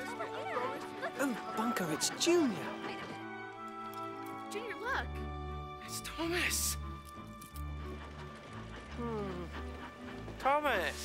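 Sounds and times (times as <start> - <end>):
low sustained film score notes: 0.0 - 11.0
steam engine clattering on track: 7.6 - 11.0.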